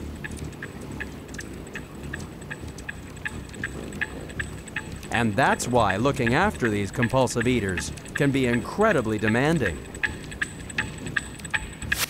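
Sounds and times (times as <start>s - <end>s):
hummingbird wingbeats humming: 0.0s - 12.0s.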